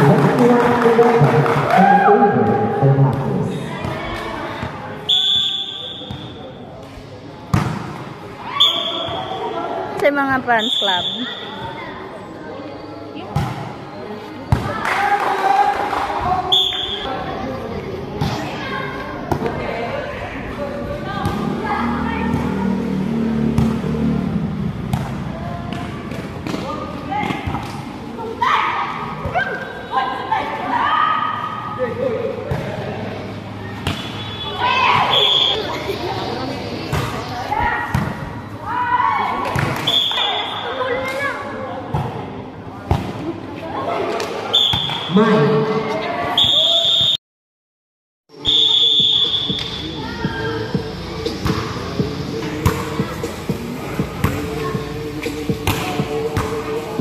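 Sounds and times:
vehicle engine humming: 20.6 - 26.5, 49.0 - 57.0
people calling out: 33.6 - 38.0, 48.4 - 57.0
short high whistle blasts: 34.2 - 35.6, 46.4 - 47.2, 48.4 - 49.7.

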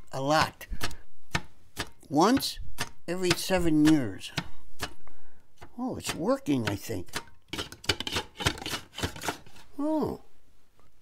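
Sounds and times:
cucumber slicing on mandoline: 0.7 - 5.0, 5.6 - 9.7.

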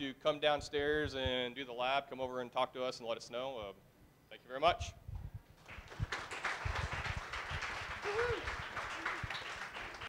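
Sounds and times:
audience applauding: 5.6 - 10.0.

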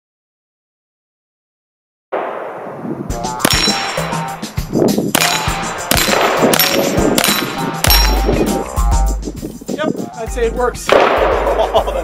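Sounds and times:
rifle shots: 2.2 - 2.8, 3.4 - 4.2, 5.1 - 8.3, 10.9 - 11.6
bullets ringing on steel plates: 3.4 - 4.2, 5.2 - 8.4.

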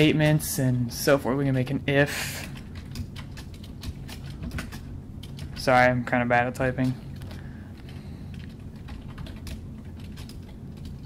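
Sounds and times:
keyboard typing: 0.0 - 11.0
low background hum: 0.0 - 11.0.

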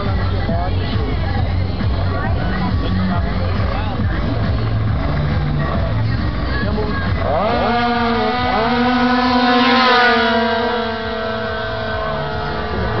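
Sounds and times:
racing scooters accelerating: 0.0 - 13.0.

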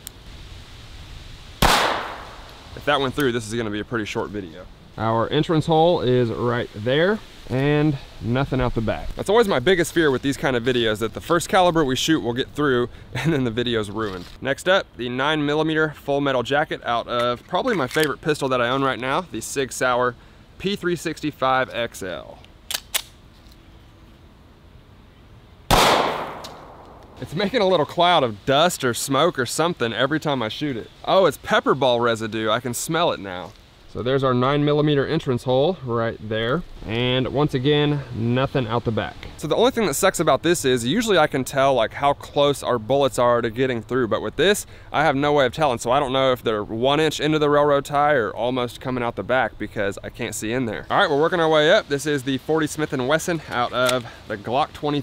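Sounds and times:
pistol shot: 1.6 - 2.6, 25.7 - 27.2.

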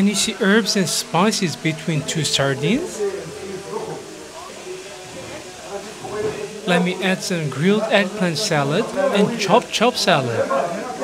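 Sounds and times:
steady hum: 0.0 - 10.5
faint background voices: 0.0 - 11.0.

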